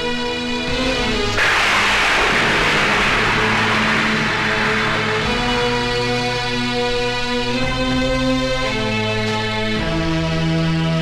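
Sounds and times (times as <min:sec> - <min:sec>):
tam-tam crash: 0:01.4 - 0:07.0
low held orchestral note: 0:02.0 - 0:06.7.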